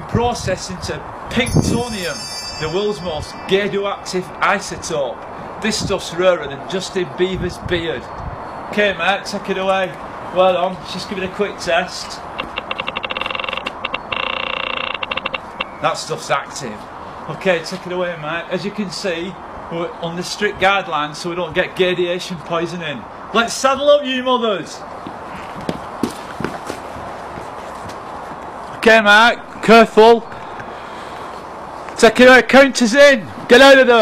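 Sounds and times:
steady outdoor hiss: 0.0s - 34.0s
geiger counter clicking: 12.3s - 15.8s
footsteps on concrete: 25.0s - 28.8s.

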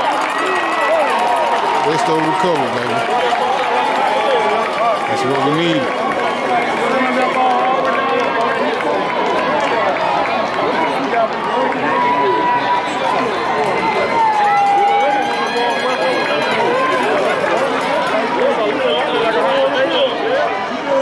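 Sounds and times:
crowd talking and shouting: 0.0s - 21.0s.

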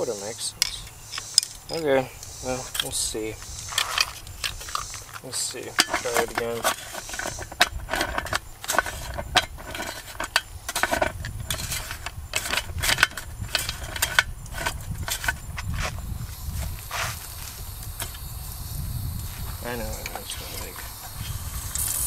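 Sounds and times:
metal clicks and knocks: 0.6s - 1.8s, 2.7s - 15.7s.

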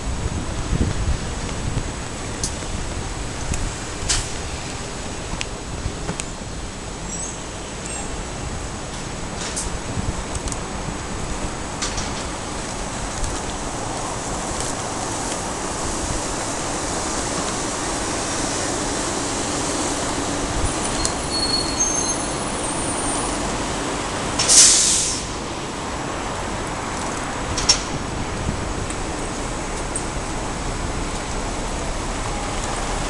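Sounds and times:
vehicles passing: 0.0s - 33.0s
faint high squeal: 20.8s - 23.3s
short hiss of air: 24.4s - 25.4s.

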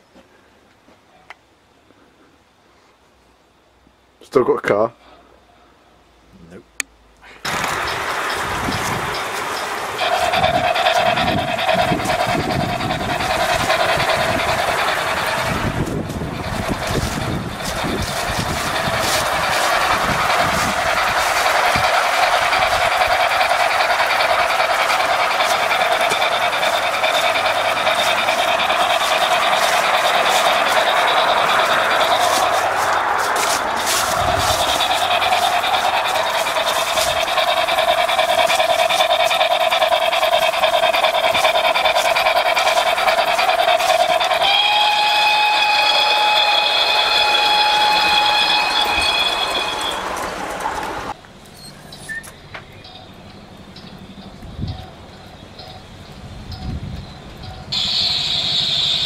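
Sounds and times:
model train high whine: 7.4s - 59.0s
wheels clicking over rails: 7.4s - 59.0s.

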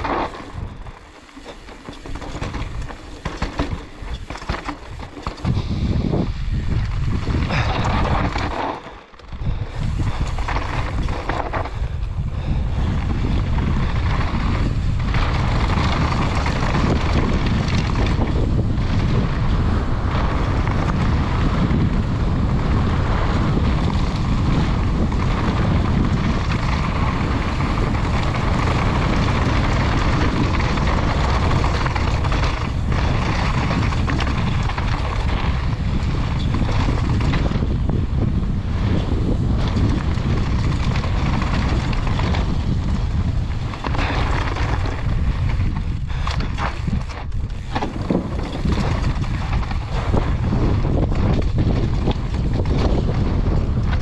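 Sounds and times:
bike tyres rolling over gravel: 0.0s - 54.0s
wind buffeting microphone: 0.0s - 54.0s.

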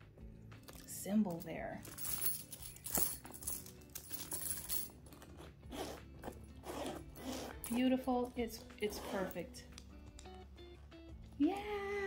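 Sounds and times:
metal chain clinking: 0.6s - 5.6s, 7.0s - 9.6s
bag handling noise: 1.8s - 10.5s.

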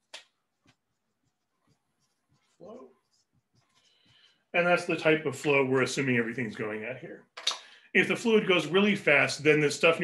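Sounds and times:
marker writing on whiteboard: 0.0s - 5.1s.

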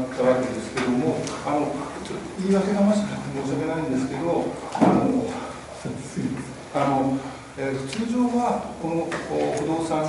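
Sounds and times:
speech in a meeting room: 0.0s - 10.0s.

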